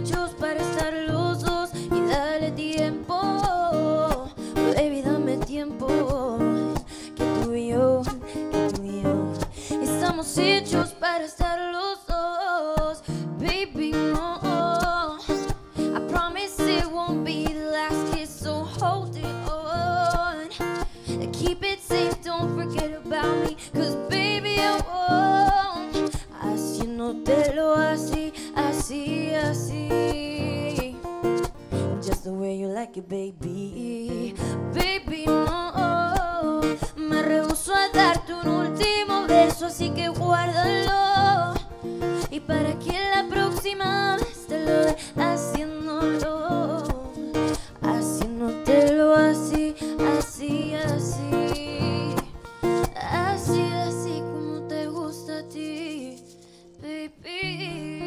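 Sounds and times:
ukulele: 0:00.0 - 0:32.5, 0:33.4 - 0:56.6
strummed acoustic guitar: 0:00.0 - 0:58.0
woman singing: 0:00.0 - 0:58.0.

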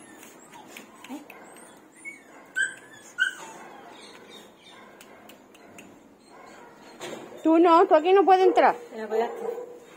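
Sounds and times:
dog whining: 0:00.0 - 0:05.0, 0:05.6 - 0:08.3.

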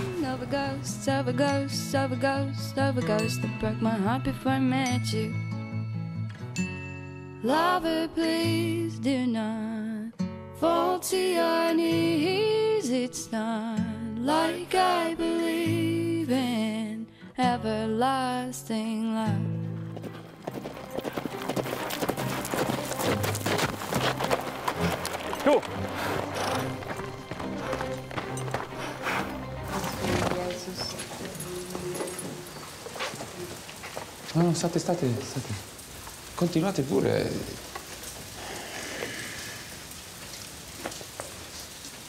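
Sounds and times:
horse hoofbeats: 0:00.0 - 0:01.0, 0:19.4 - 0:36.6
steady rain hiss: 0:00.0 - 0:01.2, 0:21.4 - 0:42.0
music: 0:00.0 - 0:33.5
sharp ticks of raindrops: 0:20.7 - 0:28.7, 0:30.6 - 0:42.0.

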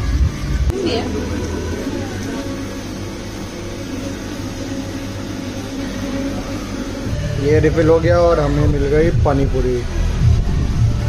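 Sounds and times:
low mechanical hum: 0:00.0 - 0:11.0
ventilation rushing noise: 0:00.0 - 0:11.0.

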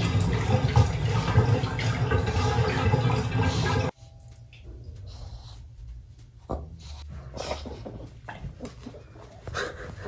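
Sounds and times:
water running in a bathtub: 0:00.0 - 0:05.1.

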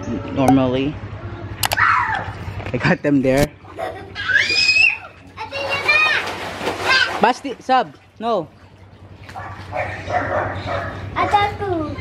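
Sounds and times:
child shouting: 0:01.7 - 0:02.3, 0:04.2 - 0:07.2, 0:11.2 - 0:12.0
water splashing: 0:04.2 - 0:10.3.

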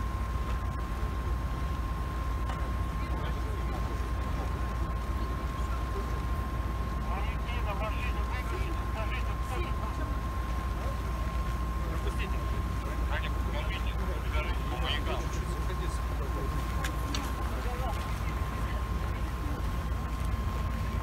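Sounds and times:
constant high whine: 0:00.0 - 0:21.0
vehicle engines idling: 0:00.0 - 0:21.0.

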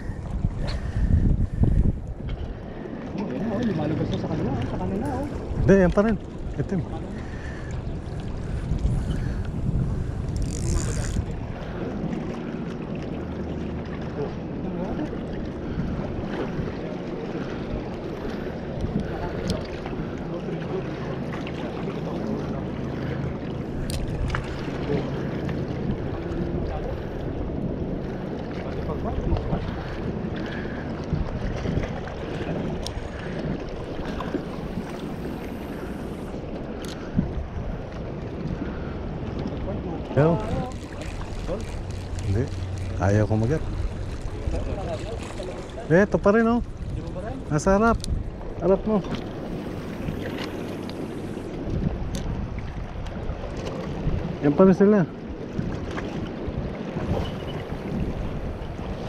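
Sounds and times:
wind buffeting microphone: 0:00.0 - 0:59.0
water washing against rocks: 0:40.2 - 0:47.6, 0:48.7 - 0:52.8.

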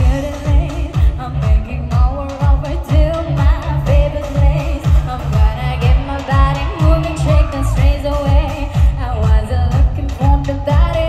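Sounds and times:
kick drum beat: 0:00.0 - 0:11.0
live pop band: 0:00.0 - 0:11.0
woman singing into a microphone: 0:00.0 - 0:11.0.

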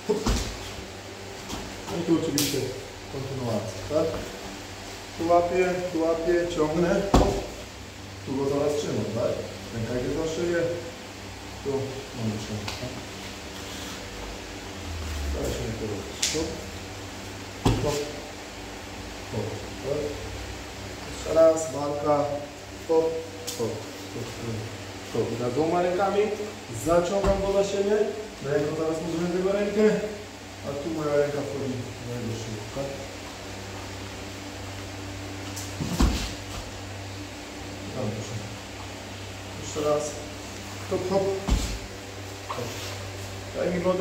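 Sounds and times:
man speaking: 0:00.0 - 0:00.5, 0:01.8 - 0:04.4, 0:05.2 - 0:07.6, 0:08.2 - 0:11.0, 0:11.6 - 0:13.1, 0:14.9 - 0:16.8, 0:17.6 - 0:18.4, 0:19.3 - 0:20.3, 0:21.1 - 0:33.2, 0:37.8 - 0:38.6, 0:39.5 - 0:41.8, 0:42.5 - 0:44.0
floor fan humming: 0:00.0 - 0:44.0
sharp slap: 0:02.3 - 0:02.6
dull thump on foam mats: 0:07.0 - 0:07.5, 0:17.6 - 0:18.0, 0:35.8 - 0:36.7, 0:41.4 - 0:41.9
faint rustles and clicks: 0:40.5 - 0:43.4.

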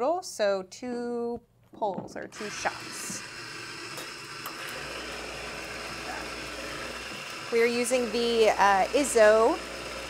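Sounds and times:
coffee grinder running: 0:02.4 - 0:10.0.

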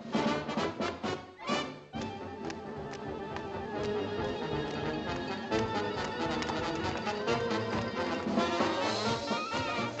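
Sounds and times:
big band brass music: 0:00.0 - 0:10.0.

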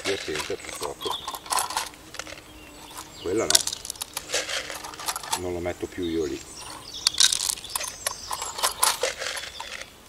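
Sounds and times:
bean seeds clicking and rattling: 0:00.0 - 0:10.0.

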